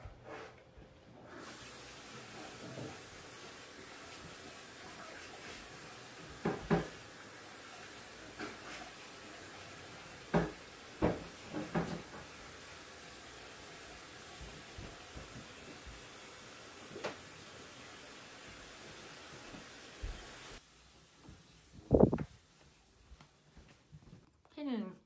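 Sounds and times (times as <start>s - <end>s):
quiet room hiss: 1.6s - 25.0s.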